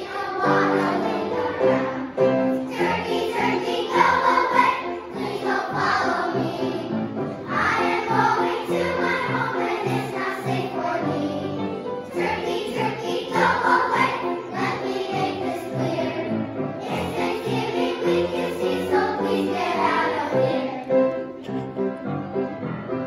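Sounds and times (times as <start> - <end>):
children's choir singing: 0.0 - 22.5.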